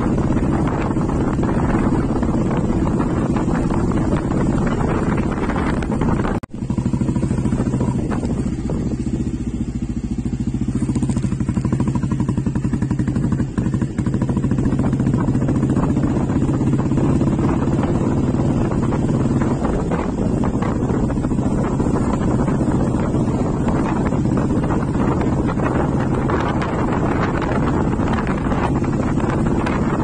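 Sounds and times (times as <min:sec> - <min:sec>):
motorcycle engine cruising: 0:00.0 - 0:30.0
wind rushing over microphone: 0:00.0 - 0:30.0.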